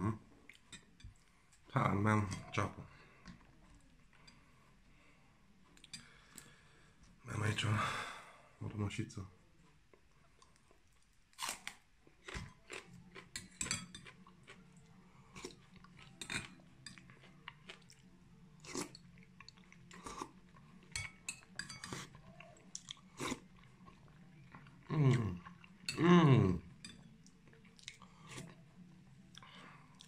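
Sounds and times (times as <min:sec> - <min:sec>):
man chewing crunchy food: 0:09.6 - 0:26.0, 0:27.2 - 0:30.0.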